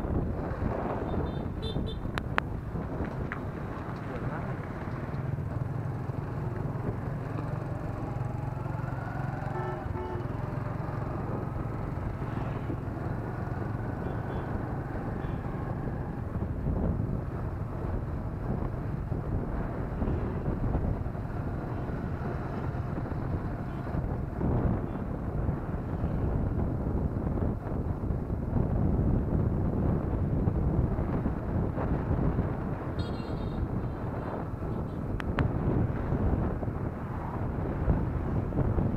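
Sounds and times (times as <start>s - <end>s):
wind on microphone: 0.0s - 5.1s, 15.0s - 38.9s.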